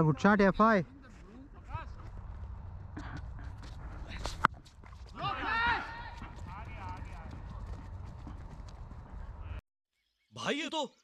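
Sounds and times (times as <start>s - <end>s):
distant shouts of players: 5.2s - 7.2s.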